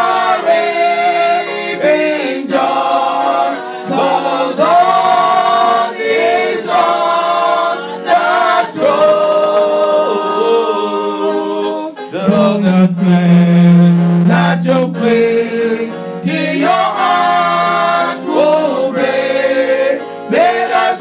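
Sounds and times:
group singing unaccompanied: 0:00.0 - 0:21.0.

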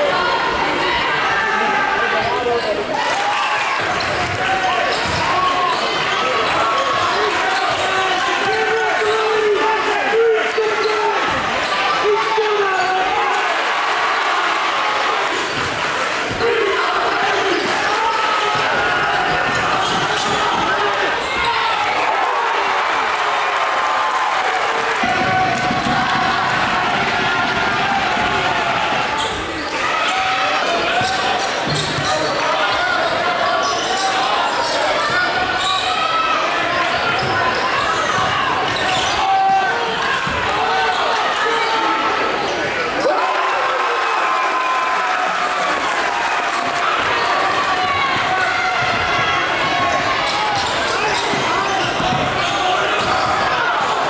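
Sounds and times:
crowd voices: 0:00.0 - 0:54.0.

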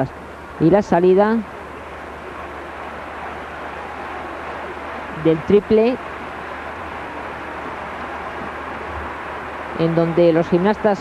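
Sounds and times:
arena crowd noise: 0:00.6 - 0:11.0.

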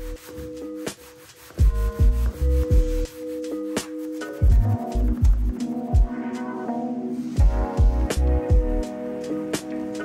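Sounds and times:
sanding block rubbing wood: 0:00.0 - 0:04.5
background music with bass beat: 0:00.0 - 0:10.0.

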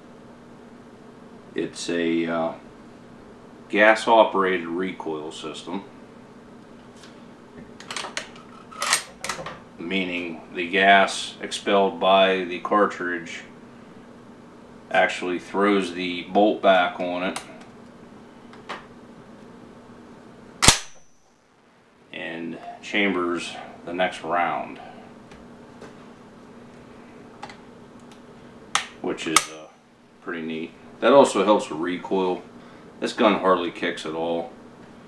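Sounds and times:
shotgun bolt slamming closed: 0:20.6 - 0:21.0.

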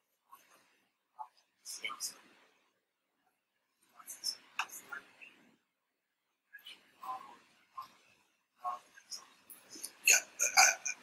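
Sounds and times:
person speaking faintly: 0:00.1 - 0:02.4, 0:03.8 - 0:05.5, 0:06.5 - 0:11.0.

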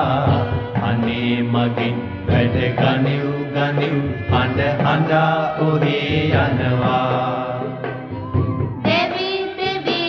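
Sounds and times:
instrumental backing: 0:00.0 - 0:10.0.

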